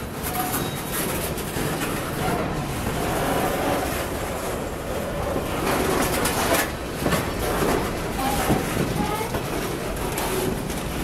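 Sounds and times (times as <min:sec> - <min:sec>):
clacks over rail joints: 0:00.0 - 0:11.0
steel wheels rumbling on rail: 0:00.0 - 0:11.0.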